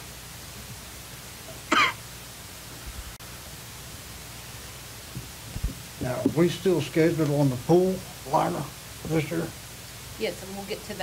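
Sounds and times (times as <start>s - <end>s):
room hiss and hum: 0.0s - 11.0s
person coughing: 1.7s - 2.0s.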